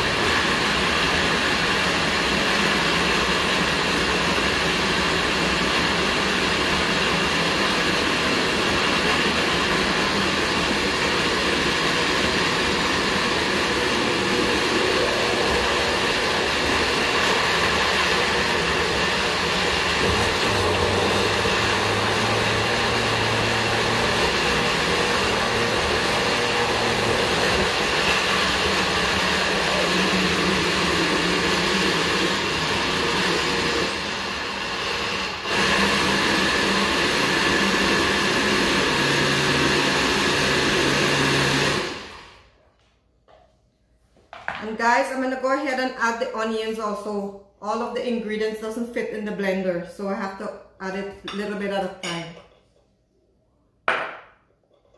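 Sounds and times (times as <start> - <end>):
blender motor running: 0.0 - 42.4.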